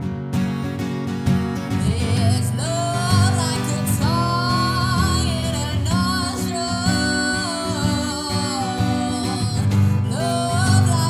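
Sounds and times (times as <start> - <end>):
guitar accompaniment: 0.0 - 11.0
woman singing: 1.7 - 11.0.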